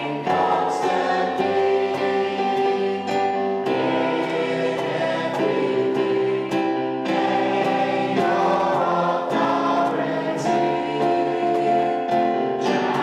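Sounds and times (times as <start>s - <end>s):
electric keyboard chords: 0.0s - 13.0s
person singing worship song: 0.0s - 13.0s.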